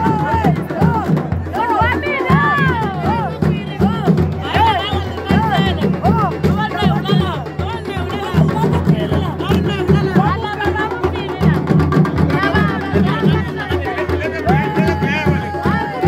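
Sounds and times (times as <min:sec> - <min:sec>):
drums beating a steady rhythm: 0:00.0 - 0:16.0
voices chanting and calling: 0:00.0 - 0:16.0.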